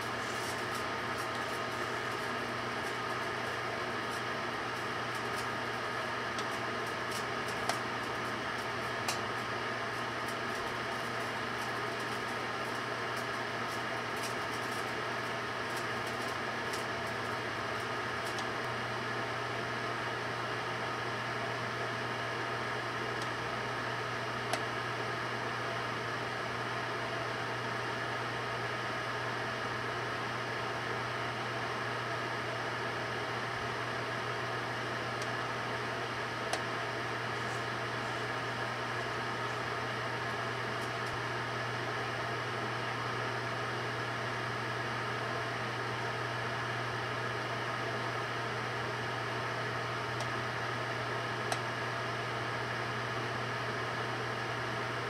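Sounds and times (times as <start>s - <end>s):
microwave oven humming: 0.0s - 55.0s.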